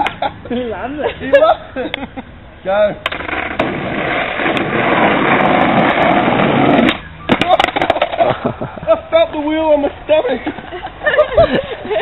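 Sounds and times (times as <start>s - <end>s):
skateboard clacking on road: 3.0s - 8.3s
skateboard wheels rolling on asphalt: 3.0s - 8.5s.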